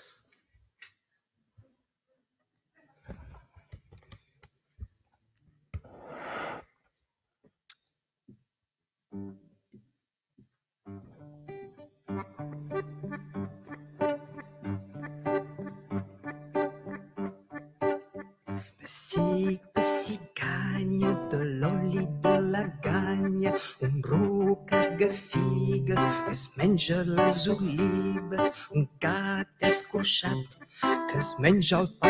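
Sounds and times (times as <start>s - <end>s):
guitar: 9.1s - 9.6s, 10.8s - 32.0s
accordion: 12.2s - 20.1s, 20.9s - 26.4s, 27.0s - 28.8s.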